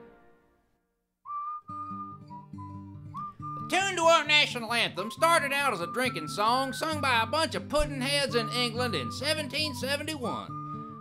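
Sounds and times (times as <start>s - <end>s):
whistled melody: 1.2s - 11.0s.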